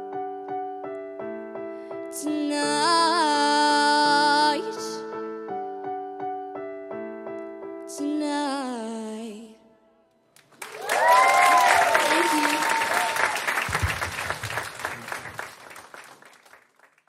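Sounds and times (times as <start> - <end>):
person singing with keyboard: 2.1 - 5.2
audience applause and cheering: 10.4 - 17.0.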